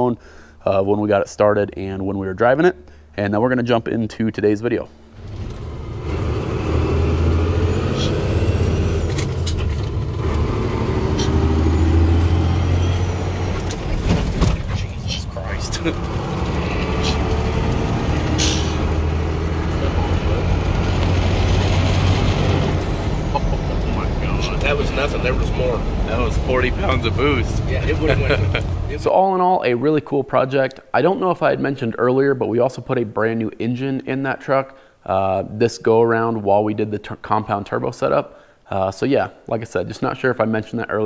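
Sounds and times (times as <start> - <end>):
diesel truck engine droning: 5.2 - 29.1.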